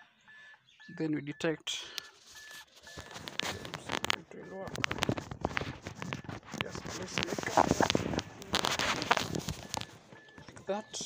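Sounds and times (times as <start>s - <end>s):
handling rustling: 2.1s - 11.0s.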